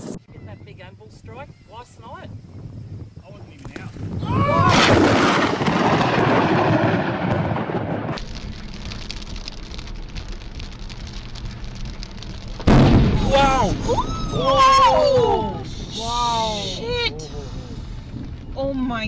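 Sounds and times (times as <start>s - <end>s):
thunder crack rumbling: 4.0s - 16.0s
people shouting excitedly: 4.2s - 5.0s, 13.2s - 15.7s
rain on a car: 8.2s - 15.3s
high-pitched screams: 13.2s - 15.8s.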